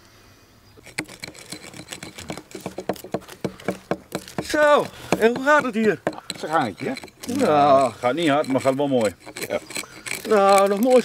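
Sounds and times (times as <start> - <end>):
axes chopping wood: 2.2 - 6.3.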